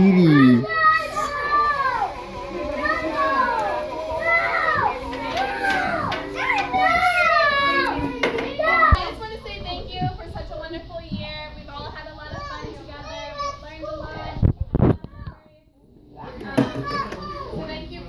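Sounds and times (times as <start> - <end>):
quiet music: 0.0 - 12.3
young children calling and chattering: 0.0 - 18.0.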